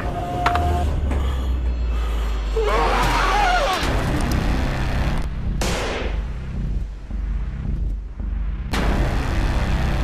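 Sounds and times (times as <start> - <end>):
deep pulsing rumble: 6.2 - 10.0
sharp cinematic hit: 8.6 - 10.0.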